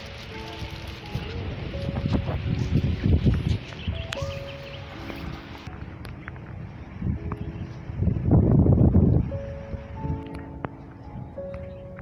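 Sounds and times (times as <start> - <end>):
faint sustained musical notes: 0.0 - 12.0.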